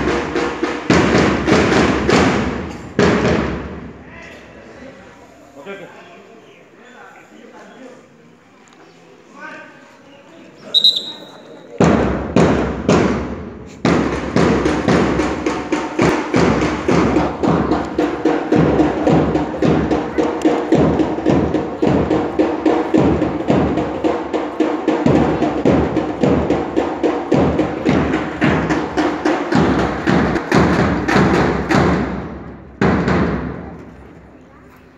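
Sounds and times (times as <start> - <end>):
marching drums beating: 0.0 - 4.0, 11.8 - 33.7.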